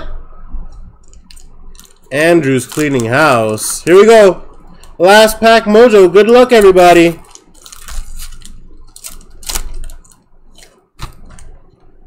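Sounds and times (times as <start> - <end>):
foil wrapper tearing and crinkling: 1.2 - 3.9, 6.5 - 11.5.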